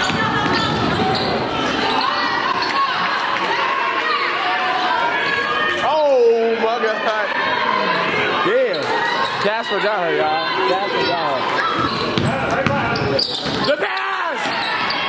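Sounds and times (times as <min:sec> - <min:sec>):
murmur of players and spectators: 0:00.0 - 0:15.0.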